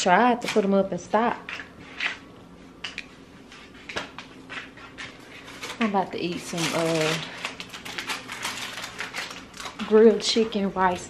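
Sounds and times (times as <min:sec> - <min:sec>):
plastic food packet crackling: 0:05.0 - 0:11.0.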